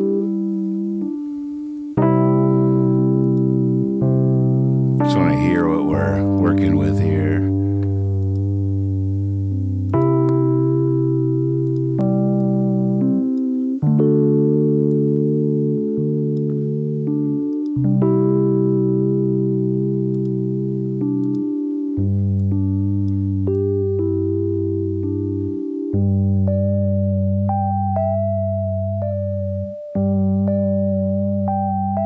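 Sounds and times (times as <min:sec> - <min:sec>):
keyboard chords: 0:00.0 - 0:32.0.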